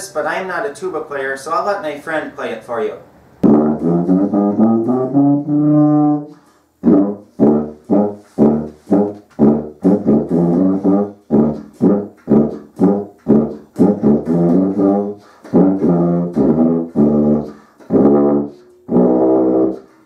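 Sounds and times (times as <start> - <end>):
tuba playing: 3.4 - 20.0.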